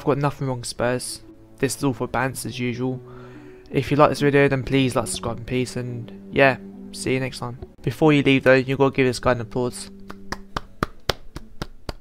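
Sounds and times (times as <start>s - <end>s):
hand claps: 9.9s - 12.0s.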